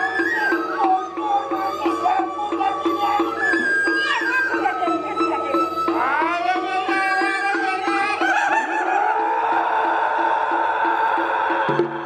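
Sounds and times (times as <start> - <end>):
high held vocal cry: 0.0 - 12.0.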